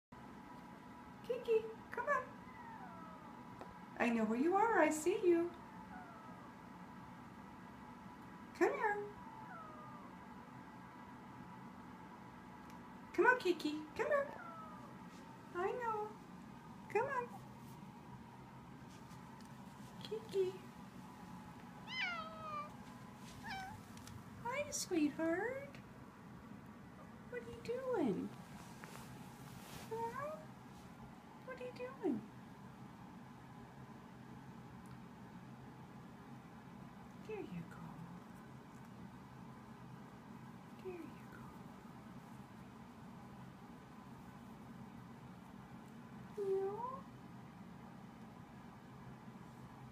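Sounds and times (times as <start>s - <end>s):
cat meowing: 5.9s - 6.5s, 21.8s - 22.8s, 23.4s - 23.9s.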